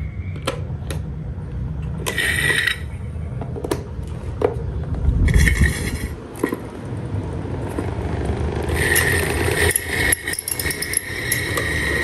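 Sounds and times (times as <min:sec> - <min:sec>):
electric desk fans running: 0:00.0 - 0:12.0
rattling scrape: 0:05.2 - 0:06.7, 0:08.7 - 0:12.0.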